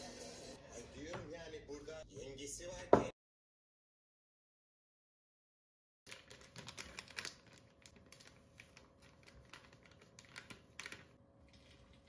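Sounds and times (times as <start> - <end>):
paper packet crinkling: 6.1 - 12.0.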